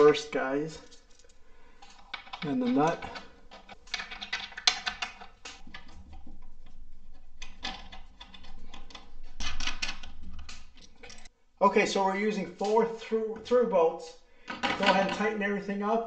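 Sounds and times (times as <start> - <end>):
metal nuts clicking and rattling: 0.7 - 11.1.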